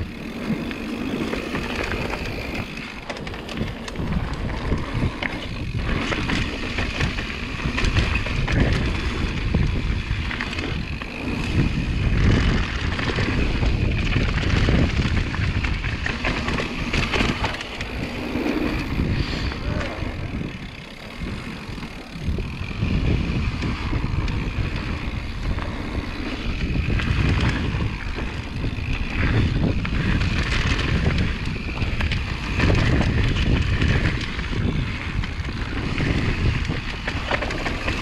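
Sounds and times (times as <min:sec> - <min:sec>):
bike tyres rattling on dirt trail: 0:00.0 - 0:38.0
wind buffeting microphone: 0:00.0 - 0:38.0.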